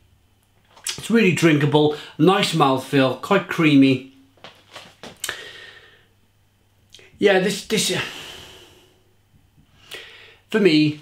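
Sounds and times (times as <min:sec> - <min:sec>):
short breath in: 0:05.3 - 0:06.1, 0:09.8 - 0:10.5
man exhaling through nose: 0:08.1 - 0:09.1.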